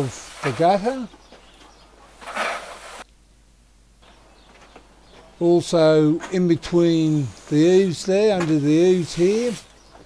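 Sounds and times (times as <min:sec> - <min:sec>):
brush scraping gutter: 0:00.0 - 0:01.1, 0:02.1 - 0:03.0, 0:08.3 - 0:09.7.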